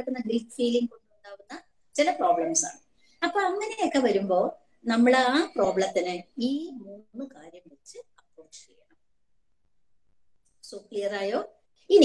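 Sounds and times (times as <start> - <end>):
woman speaking: 0.0 - 8.9, 10.6 - 12.0.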